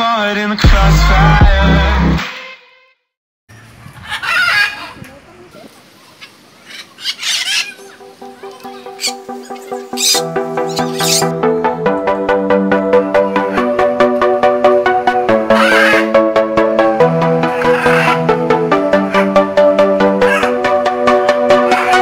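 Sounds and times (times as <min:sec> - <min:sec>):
music with steady beat: 0:00.6 - 0:02.2, 0:08.0 - 0:22.0
loud bird calls: 0:05.9 - 0:11.3, 0:15.4 - 0:16.2, 0:17.4 - 0:19.4, 0:20.2 - 0:20.6, 0:21.5 - 0:22.0.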